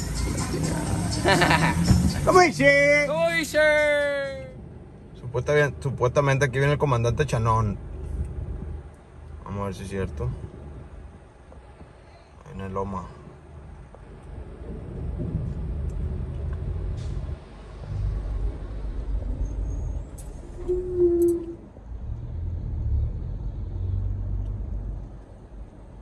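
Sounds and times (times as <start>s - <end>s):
minibus engine rumble: 0.0s - 26.0s.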